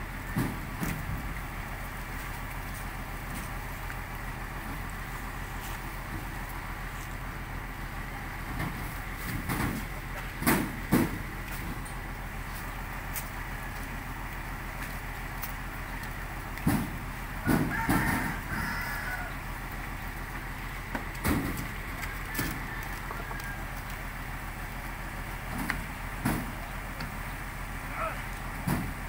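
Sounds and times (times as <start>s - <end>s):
sacks thumping onto truck bed: 28.6s - 29.0s.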